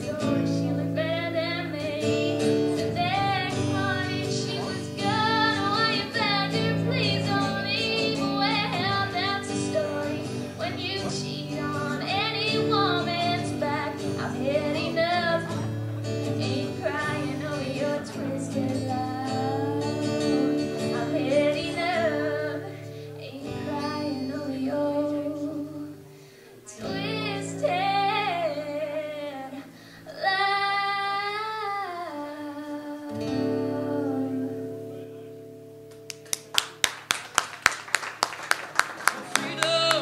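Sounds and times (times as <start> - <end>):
woman singing: 0.0 - 26.1, 26.7 - 35.0
strummed acoustic guitar: 0.0 - 31.2, 33.1 - 36.8, 39.1 - 40.0.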